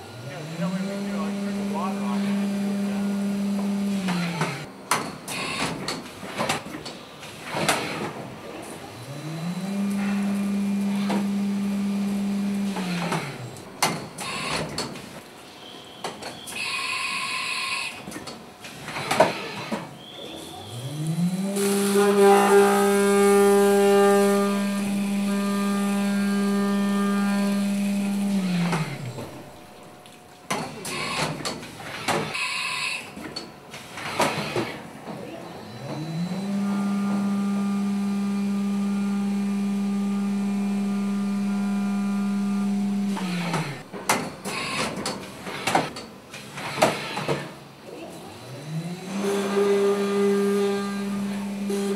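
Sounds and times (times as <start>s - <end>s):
machine spindle humming: 0.0s - 4.7s, 21.0s - 32.4s, 35.6s - 45.9s
milling cutter whine: 0.0s - 4.7s, 20.9s - 32.4s, 35.7s - 45.9s.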